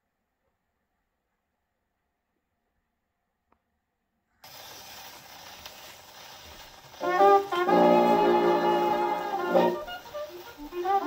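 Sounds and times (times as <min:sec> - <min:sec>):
record surface hiss and crackle: 0:04.4 - 0:11.0.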